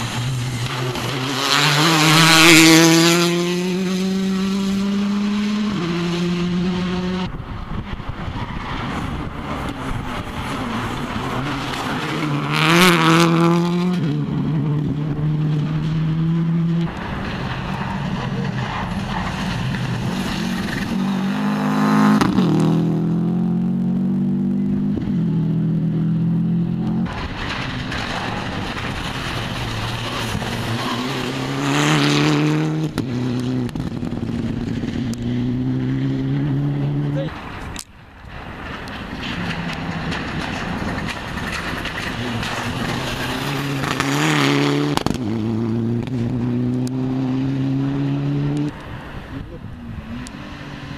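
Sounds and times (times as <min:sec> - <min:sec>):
rally car engines at full throttle: 0:00.0 - 0:50.9.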